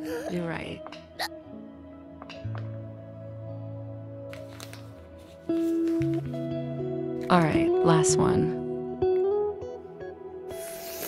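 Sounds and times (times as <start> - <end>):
soft guitar-like background music: 0.0 - 11.0
rustling noise: 4.3 - 6.4.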